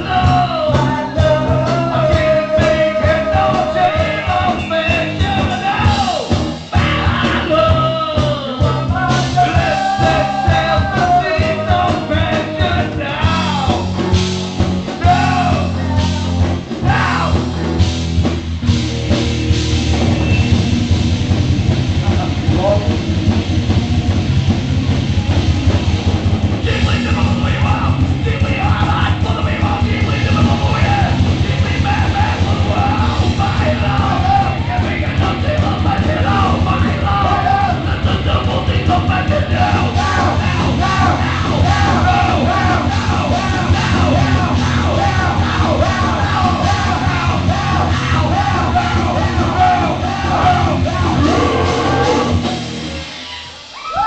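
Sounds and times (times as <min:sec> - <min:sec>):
singer shouting vocals: 0:00.0 - 0:14.0, 0:14.9 - 0:17.7, 0:26.6 - 0:52.7
distorted guitars: 0:00.0 - 0:54.0
fast drum-kit beats: 0:00.0 - 0:54.0
live rock band: 0:00.0 - 0:54.0.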